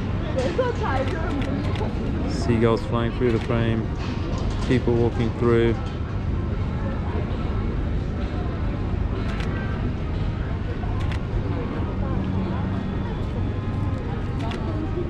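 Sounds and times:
distant voices: 0.0 - 15.0
low street rumble: 0.0 - 15.0.

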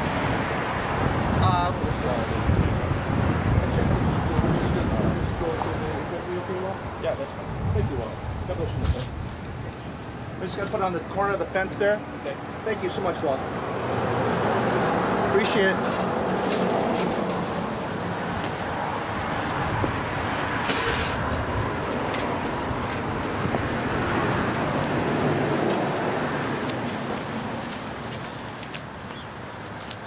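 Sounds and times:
road traffic noise: 0.0 - 30.0.

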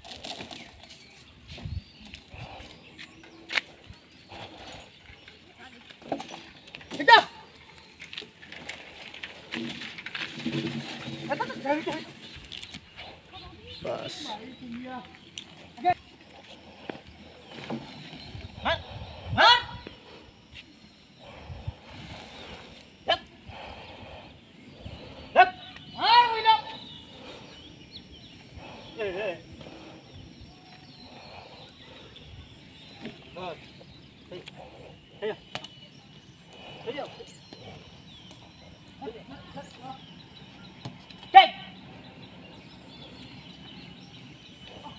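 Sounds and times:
person shouting commands: 7.0 - 7.4, 19.4 - 19.8, 25.4 - 26.8, 41.3 - 41.7.

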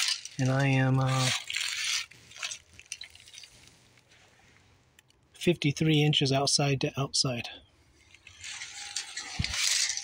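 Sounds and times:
metal handling rattle: 0.0 - 3.7, 8.0 - 10.0.

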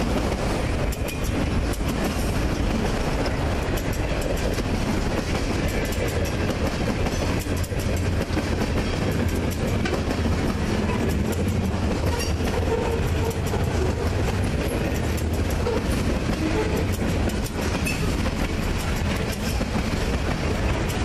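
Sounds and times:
clickety-clack over rail joints: 0.0 - 21.0
train wheels rumbling on rail: 0.0 - 21.0
wheel squeals: 12.0 - 14.0.

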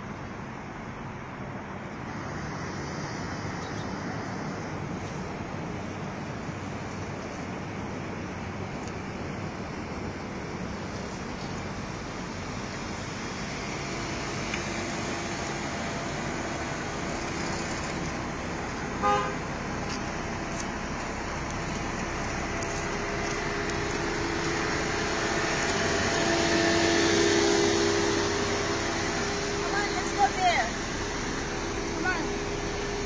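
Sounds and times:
car engine and tyre noise: 0.0 - 33.0.

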